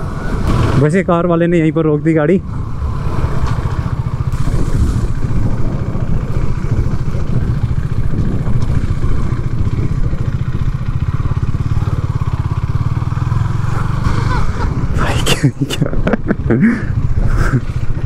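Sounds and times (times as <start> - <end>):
motorcycle engine at low revs: 0.0 - 18.0.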